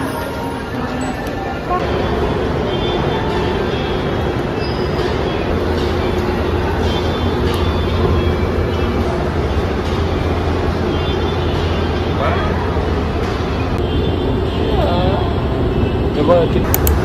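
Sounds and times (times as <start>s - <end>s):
escalator mechanical hum: 0.0s - 17.0s.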